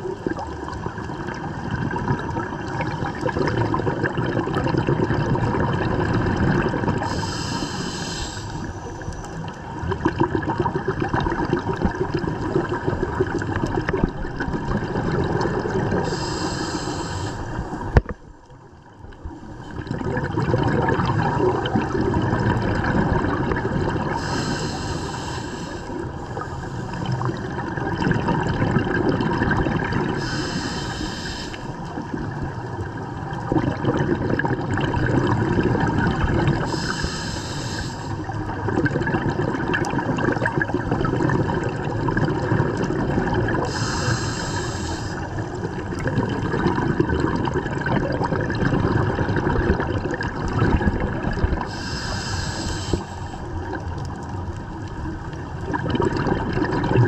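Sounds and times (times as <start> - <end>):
underwater regulator bubbling: 0.0 - 18.2, 19.2 - 57.0
breath hiss: 7.0 - 9.1, 16.0 - 17.9, 24.1 - 27.1, 30.2 - 31.9, 36.6 - 38.3, 43.6 - 45.6, 51.6 - 53.6.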